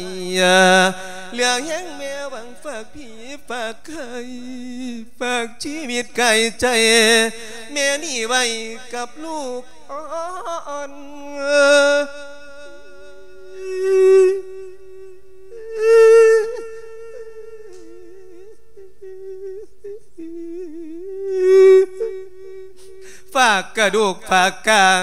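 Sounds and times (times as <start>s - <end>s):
man humming a wavering note: 0.0s - 3.0s, 11.4s - 23.1s.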